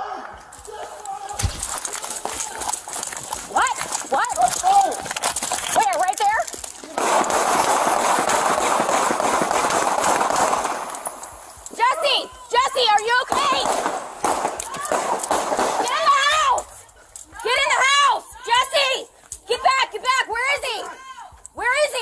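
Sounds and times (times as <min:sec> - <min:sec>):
people shouting: 0:00.0 - 0:02.7, 0:11.8 - 0:22.0.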